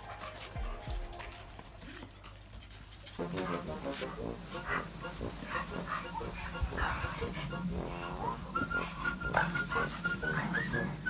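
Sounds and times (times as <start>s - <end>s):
dogs growling: 1.8s - 11.0s
high whistled tune: 7.9s - 11.0s.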